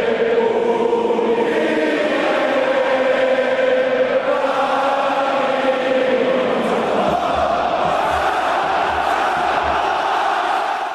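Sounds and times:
choir singing held notes: 0:00.0 - 0:10.9.

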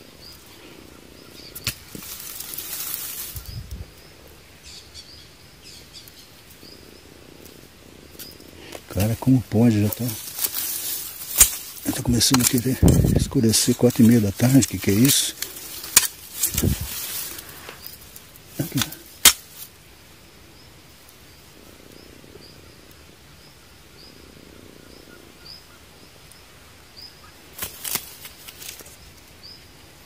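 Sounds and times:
handling knocks and rustles: 0:01.5 - 0:03.6, 0:08.2 - 0:18.0.

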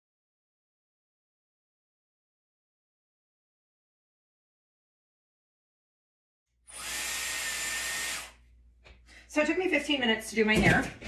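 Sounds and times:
hair styler blowing air: 0:06.7 - 0:08.4.

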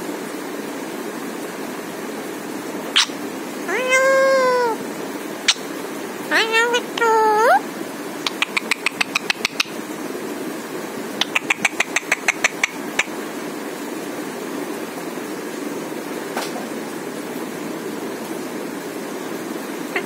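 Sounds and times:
parakeet calls: 0:02.9 - 0:04.8, 0:05.4 - 0:05.7, 0:06.3 - 0:07.6, 0:08.2 - 0:09.8, 0:11.1 - 0:13.2.

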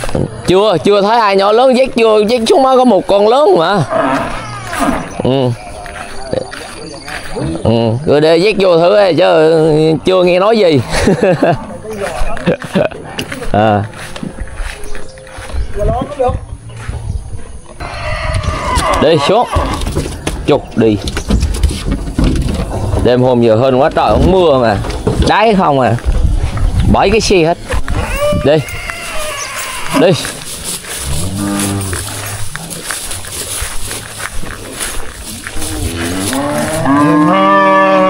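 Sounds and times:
cow mooing: 0:03.7 - 0:05.2, 0:31.0 - 0:32.4, 0:35.6 - 0:38.0.

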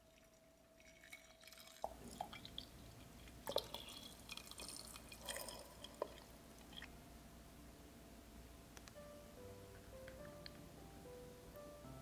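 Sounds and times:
water dripping and splashing: 0:00.0 - 0:06.9
water pouring into teapot: 0:00.0 - 0:06.9.

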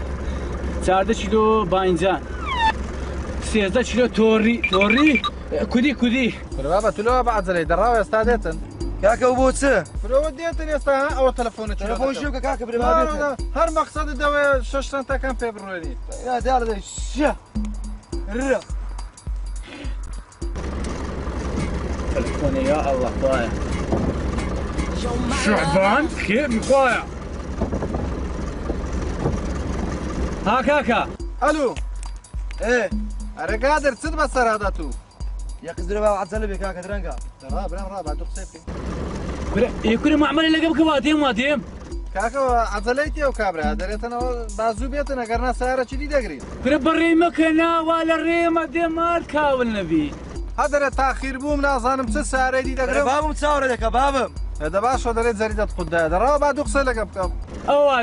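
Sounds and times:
vehicle engine humming: 0:00.0 - 0:58.0
voices: 0:00.8 - 0:17.5, 0:22.1 - 0:23.9, 0:24.5 - 0:27.2, 0:30.4 - 0:31.8, 0:39.4 - 0:58.0
man talking: 0:03.4 - 0:17.4, 0:18.2 - 0:18.7, 0:22.1 - 0:23.6, 0:25.0 - 0:27.1, 0:32.6 - 0:35.0, 0:35.6 - 0:38.7, 0:39.5 - 0:41.6, 0:42.2 - 0:58.0.

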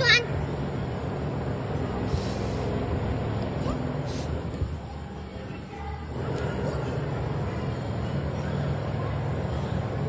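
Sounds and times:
brief high hiss: 0:02.1 - 0:02.8, 0:03.6 - 0:04.4.

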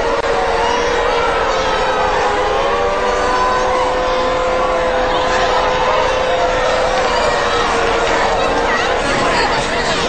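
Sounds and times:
air-raid sirens wailing: 0:00.0 - 0:10.0
crowd and street noise: 0:00.0 - 0:10.0.

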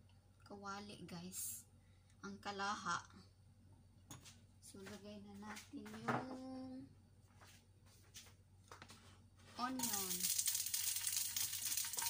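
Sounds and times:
onion sizzling in oil: 0:09.8 - 0:12.0.

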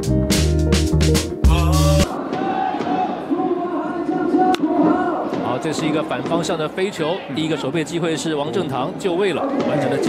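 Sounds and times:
crowd chanting and cheering: 0:01.4 - 0:08.1, 0:09.0 - 0:10.0.

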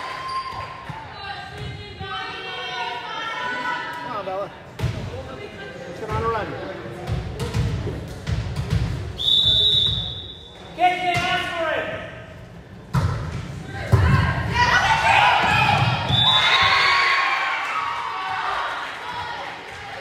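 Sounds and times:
referee's whistle: 0:09.2 - 0:10.6, 0:16.1 - 0:16.7
people shouting: 0:13.8 - 0:19.5.

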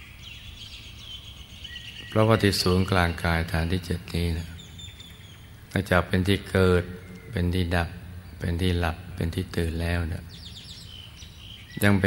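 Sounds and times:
faint high bird chirps: 0:00.0 - 0:12.0
low background hiss: 0:00.0 - 0:12.0
man speaking: 0:02.1 - 0:04.6, 0:05.7 - 0:10.3, 0:11.8 - 0:12.0.

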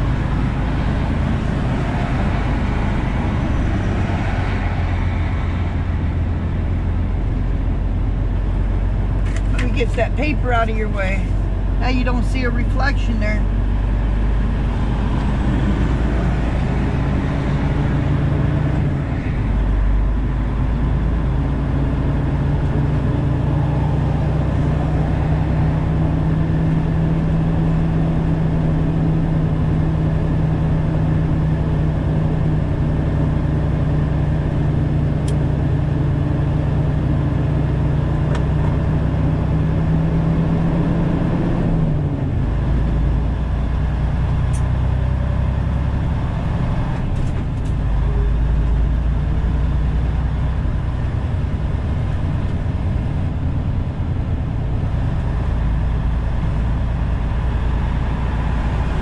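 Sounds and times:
diesel engine droning: 0:00.0 - 0:59.0
road and tyre noise: 0:00.0 - 0:59.0.

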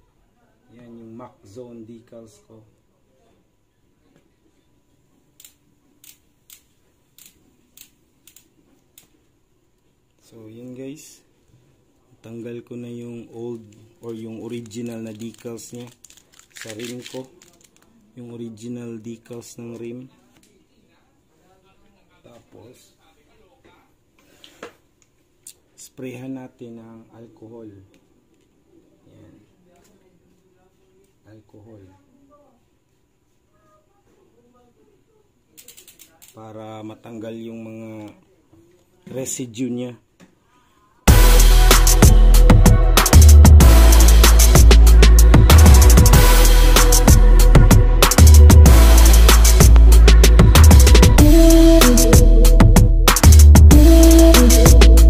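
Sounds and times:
bicycle hub ratcheting clicks: 0:05.4 - 0:09.1, 0:35.6 - 0:36.4.

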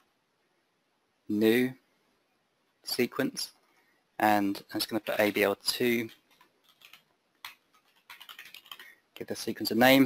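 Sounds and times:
typing on computer keyboard: 0:06.0 - 0:09.0.

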